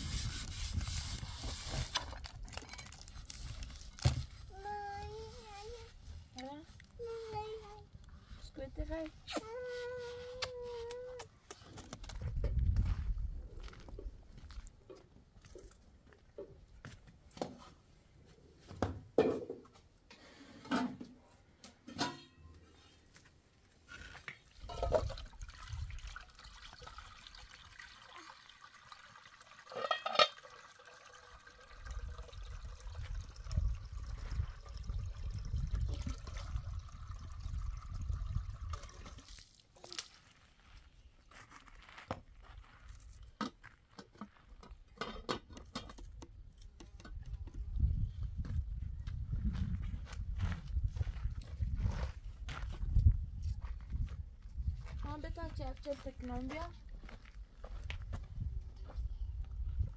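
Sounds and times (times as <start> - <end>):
hose water running into metal pot: 24.6 - 39.6
pot knocking and clanking: 29.7 - 30.4.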